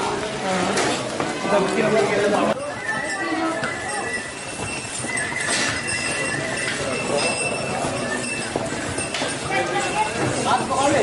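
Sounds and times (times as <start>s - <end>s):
crowd voices: 0.0s - 11.0s
hooves clip-clopping on pavement: 0.0s - 11.0s.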